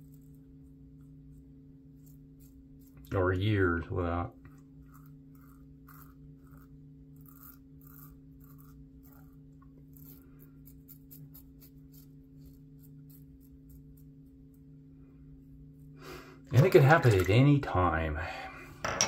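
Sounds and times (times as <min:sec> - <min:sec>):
steady low hum: 0:00.0 - 0:19.0
safety razor scraping stubble: 0:04.5 - 0:14.2.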